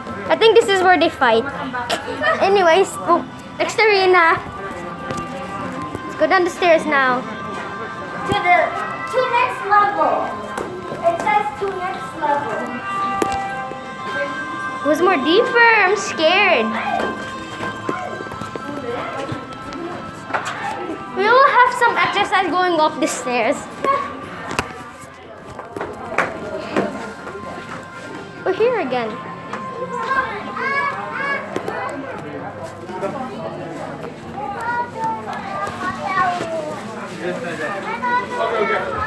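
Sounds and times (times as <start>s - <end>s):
ambient background music: 0.0s - 32.6s
children chattering and calling out: 0.0s - 39.0s
murmur of distant voices: 0.0s - 39.0s.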